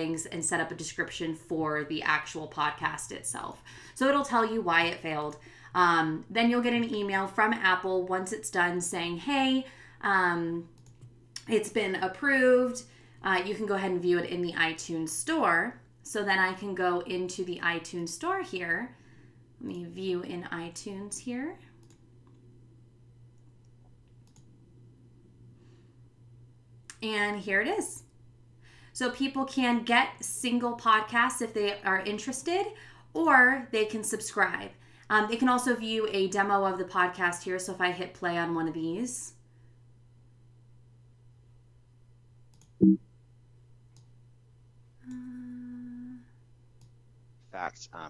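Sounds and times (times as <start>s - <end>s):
low steady hum: 0.0s - 48.0s
computer mouse clicks: 10.8s - 11.1s, 21.8s - 22.4s, 23.4s - 24.5s, 42.5s - 43.0s
steady pitched tone: 42.8s - 43.0s.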